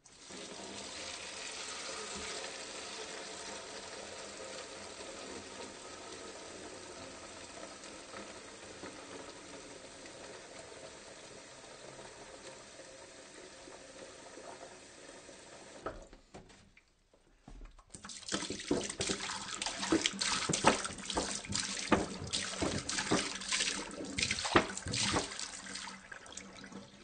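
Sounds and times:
water pouring from a jug: 17.9s - 27.0s.

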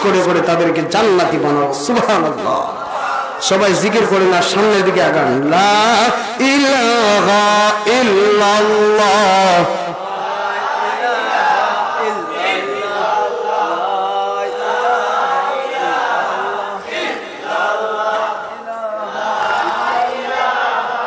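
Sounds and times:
crowd chanting: 0.0s - 21.0s.

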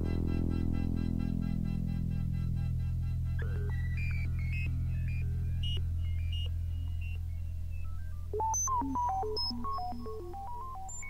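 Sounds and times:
synthesizer drone: 0.0s - 11.0s
synthesizer bleeping notes: 3.3s - 11.0s.

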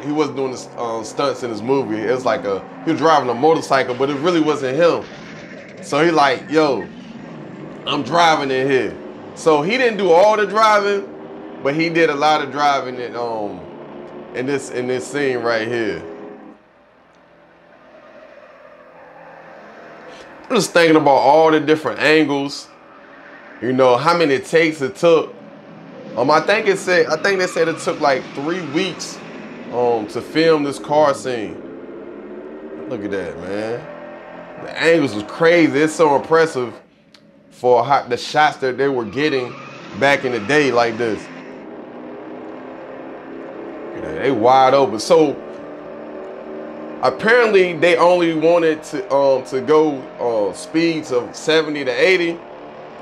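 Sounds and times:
faint car engines running: 0.0s - 53.0s.

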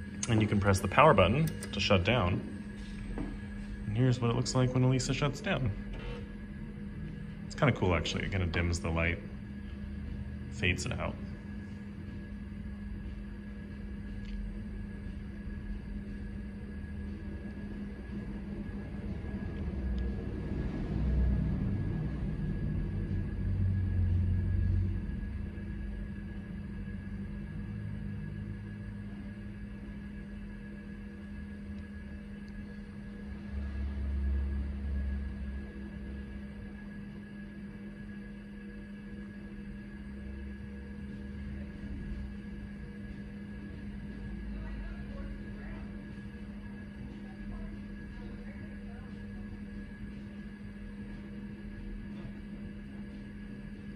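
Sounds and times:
computer electrical hum: 0.0s - 53.9s.

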